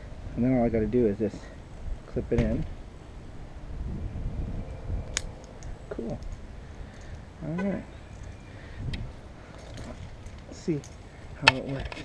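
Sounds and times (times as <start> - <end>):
low rumble of movement: 0.0 - 7.4.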